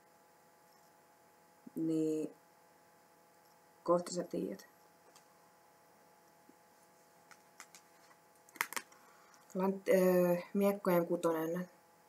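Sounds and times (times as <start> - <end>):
fingernails clicking on cards: 7.3 - 9.0.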